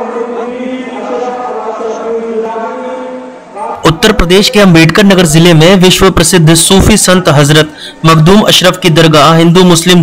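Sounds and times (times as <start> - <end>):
voices chanting held notes: 0.0 - 4.7.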